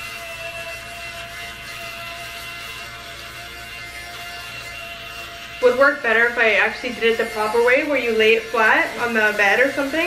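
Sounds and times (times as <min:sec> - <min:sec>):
electric fabric shaver whining: 0:00.0 - 0:10.0.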